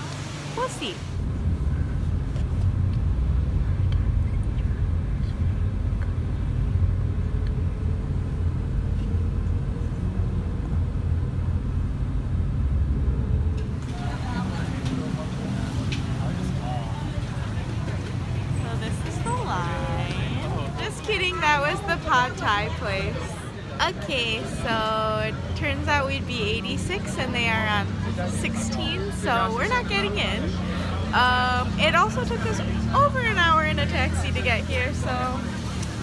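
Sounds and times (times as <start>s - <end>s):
busy street noise: 0.0s - 36.0s
road noise inside car: 0.0s - 36.0s
faint voices: 13.7s - 36.0s.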